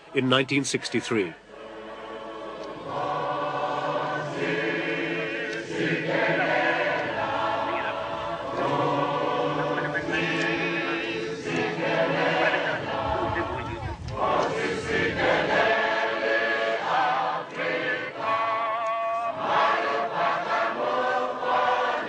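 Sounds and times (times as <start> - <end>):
choir singing slow song: 1.4 - 22.0.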